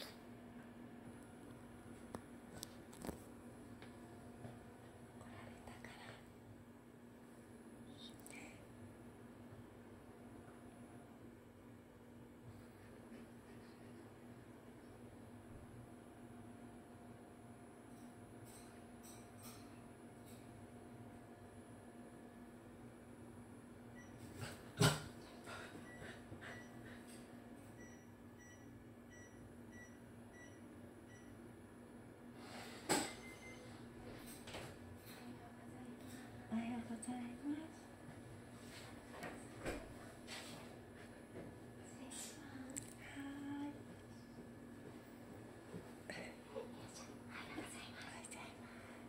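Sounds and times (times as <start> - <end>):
soft whispering voice: 5.1 - 6.4, 7.8 - 8.8, 41.8 - 43.9, 46.1 - 49.0.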